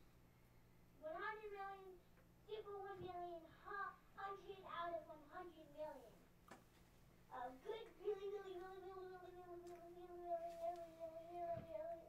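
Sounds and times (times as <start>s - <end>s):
girl singing: 1.0s - 6.2s, 7.3s - 12.0s.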